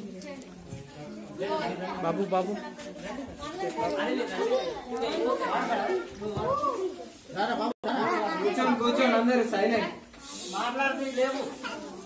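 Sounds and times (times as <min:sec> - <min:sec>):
children and adults chattering: 0:00.0 - 0:12.0.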